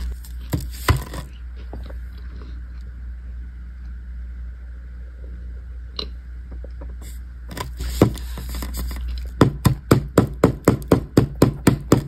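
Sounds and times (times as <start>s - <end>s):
cornstarch crunching: 0.0s - 1.4s.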